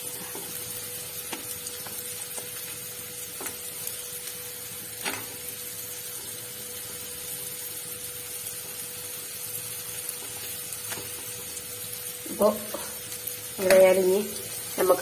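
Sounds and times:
food sizzling in a pan: 0.0 - 15.0.

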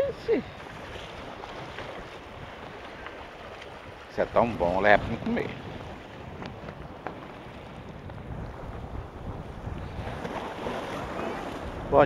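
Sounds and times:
waves washing against rocks: 0.0 - 12.0
wind buffeting microphone: 0.0 - 12.0.

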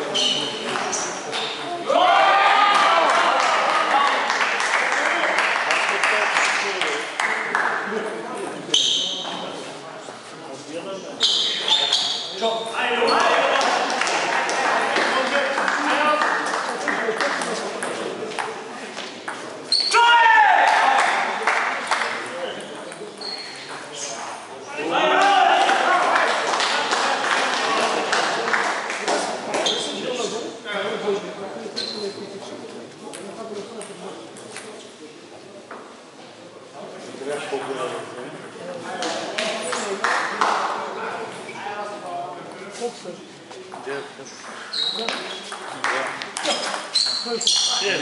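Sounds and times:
shoes squeaking on floor: 0.0 - 1.7, 8.7 - 9.7, 11.0 - 13.4, 19.6 - 20.0, 22.5 - 24.4, 29.6 - 30.0, 31.7 - 32.3, 43.6 - 45.8, 46.4 - 48.0
people talking: 0.0 - 48.0
loud shout: 1.8 - 4.2, 19.8 - 21.3, 24.7 - 26.4.

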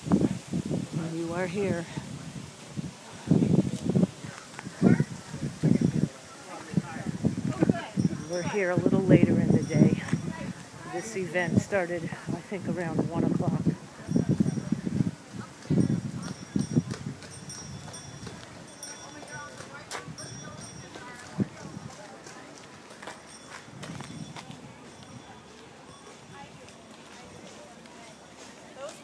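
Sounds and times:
voices talking: 1.0 - 29.0
horse hooves clip-clop on pavement: 13.7 - 29.0.

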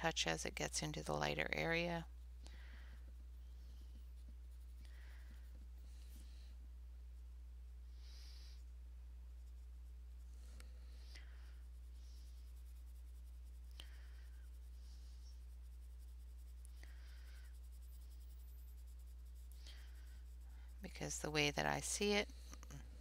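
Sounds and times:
low electrical hum: 0.0 - 23.0
pencil scratching on paper: 11.7 - 22.2.

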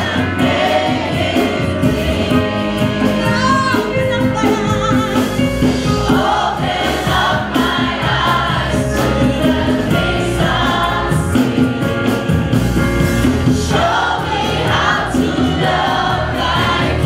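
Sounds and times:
gospel choir singing: 0.0 - 17.0
instrumental accompaniment: 0.0 - 17.0.

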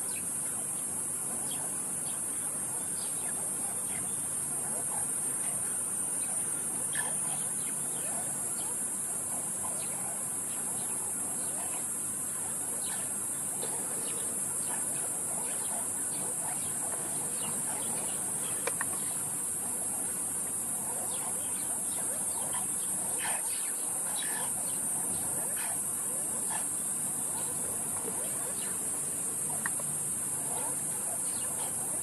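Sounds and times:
night insects chorus: 0.0 - 32.0.

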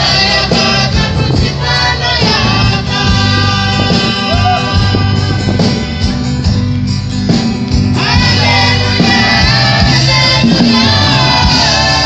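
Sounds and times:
choir singing a hymn in harmony: 0.0 - 6.1, 7.9 - 12.0.

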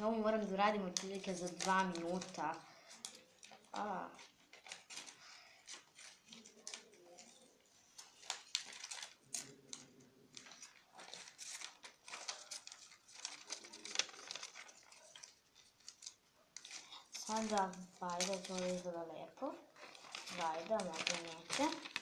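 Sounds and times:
paper rustling and crinkling: 0.0 - 22.0
scissors snipping paper: 1.0 - 18.9, 19.8 - 22.0.

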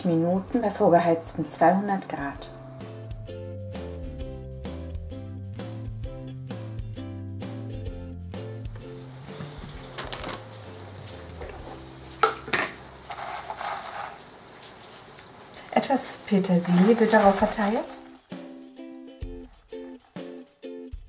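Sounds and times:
background music: 0.0 - 13.6, 15.6 - 21.0
casserole sizzling: 8.6 - 20.7
tray knocking: 8.8 - 10.6, 11.3 - 12.8
kitchen things being handled: 9.1 - 14.8, 15.6 - 18.2.

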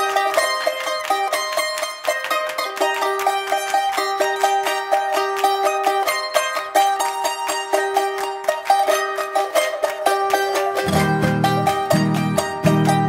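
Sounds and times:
charango plucked notes: 0.0 - 13.0
guitar accompaniment: 0.0 - 13.0.

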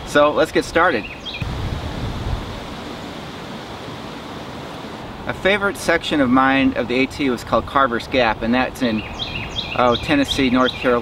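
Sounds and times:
outdoor background hiss: 0.0 - 11.0.

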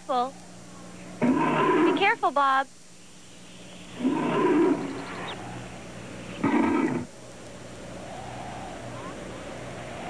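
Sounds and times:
bear roaring: 1.2 - 2.1, 4.0 - 5.7, 6.4 - 7.1.

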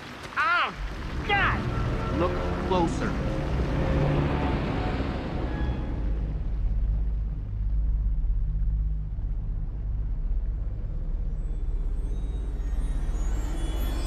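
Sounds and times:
low rumble: 0.8 - 14.0.

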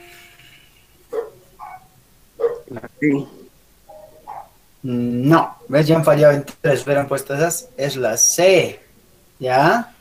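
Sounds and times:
dog barks: 1.1 - 2.8, 3.9 - 4.6, 5.4 - 5.7.

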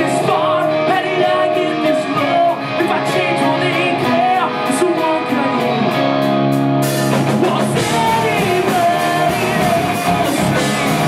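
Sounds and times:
man singing: 0.0 - 6.3, 7.1 - 11.0
live rock band playing: 0.0 - 11.0.

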